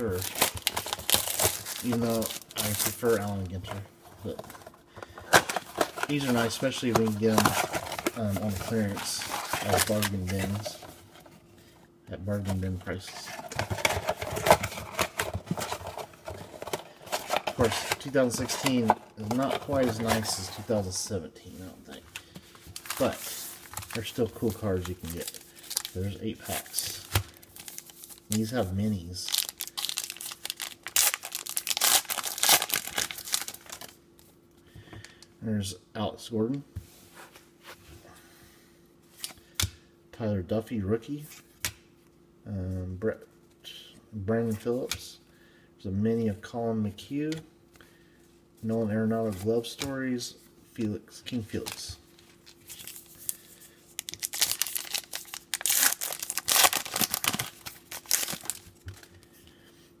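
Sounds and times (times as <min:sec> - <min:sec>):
plastic wrapper tearing and crinkling: 0:00.0 - 0:04.6, 0:05.3 - 0:10.9, 0:22.8 - 0:28.6, 0:29.2 - 0:34.0, 0:51.6 - 0:59.1.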